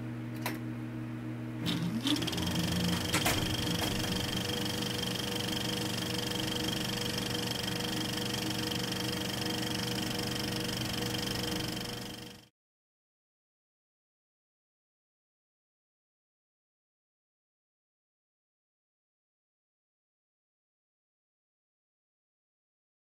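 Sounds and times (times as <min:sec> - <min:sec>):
machine clicks: 0:01.6 - 0:12.4
small motorised machine whirring: 0:01.6 - 0:12.5.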